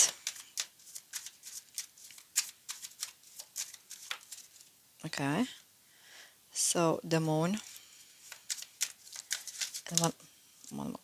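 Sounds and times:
cards being shuffled: 0.0 - 4.7, 7.6 - 11.0.

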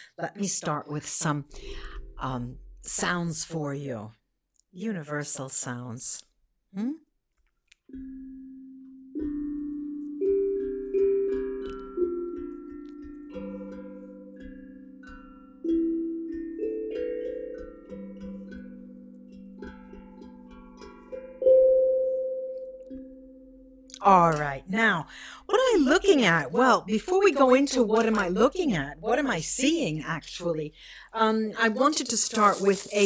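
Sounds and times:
tuned percussion melody: 1.2 - 3.7, 7.9 - 24.9, 31.8 - 33.0.

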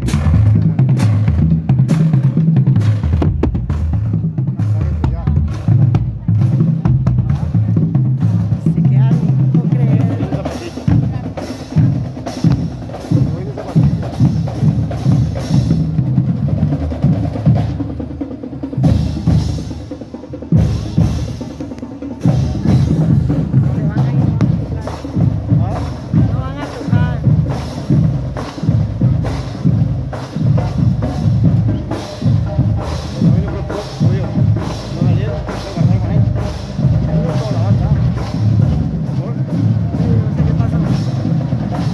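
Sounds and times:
snare drum rolls: 0.0 - 8.5, 9.1 - 18.0
bass drum beats: 0.0 - 41.9.

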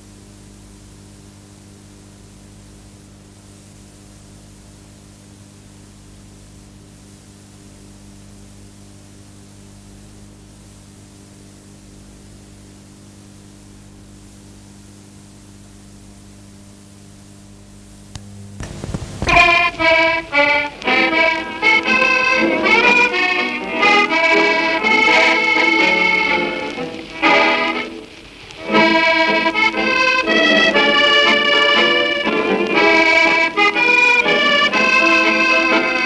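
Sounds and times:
low hum: 6.3 - 30.2
accordion music: 19.2 - 36.0.

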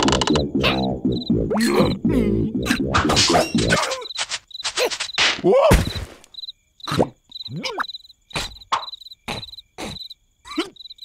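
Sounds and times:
squeaky cartoon vocal noises: 0.0 - 5.8, 6.9 - 10.8
crickets chirping: 0.2 - 2.0, 2.6 - 11.0.

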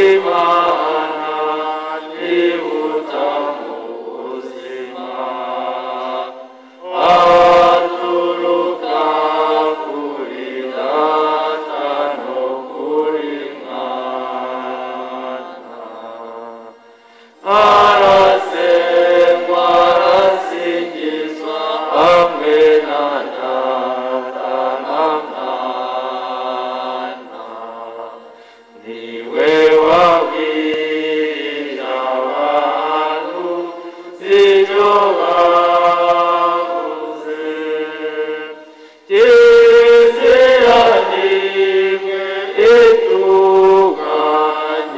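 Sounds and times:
choir and congregation singing hymn: 0.0 - 44.9.

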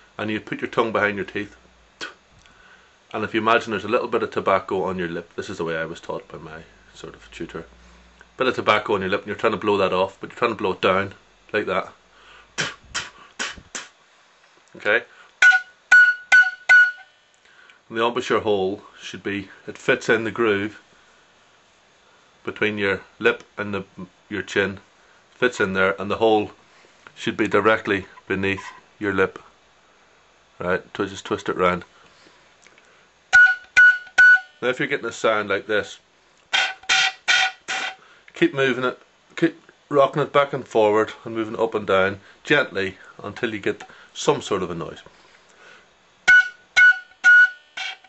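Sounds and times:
tongued puffs of breath: 12.2 - 13.9
breathy flute puffs: 12.2 - 14.0, 15.1 - 17.7, 33.3 - 34.6.

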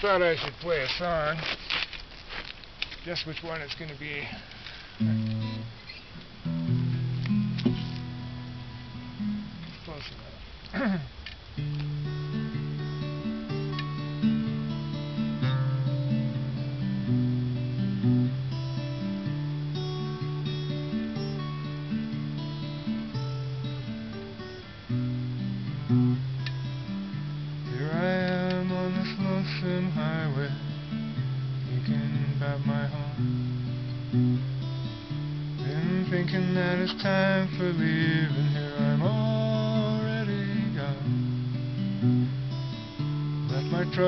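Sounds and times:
acoustic guitar ballad: 0.0 - 44.0
person coughing: 10.7 - 11.1.

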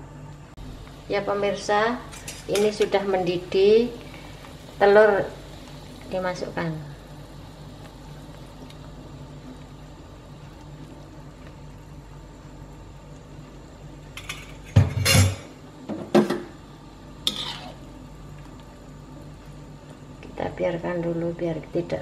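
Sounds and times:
broth boiling in a wok: 0.0 - 22.0
metal utensils clanking: 14.2 - 15.5.

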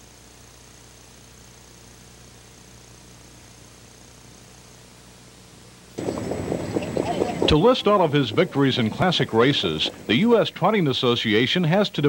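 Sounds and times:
faint high whine: 0.0 - 12.0
videotape hiss and hum: 0.0 - 12.0
background noise: 5.6 - 12.0.

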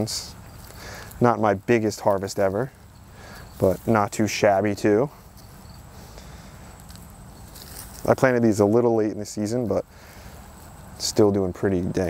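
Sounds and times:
hands rustling potting mix: 0.0 - 12.0.

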